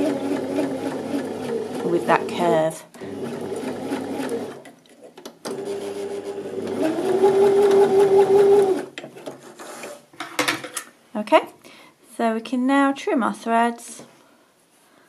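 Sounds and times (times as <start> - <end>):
sewing machine stitching: 0.0 - 4.7, 5.5 - 8.9.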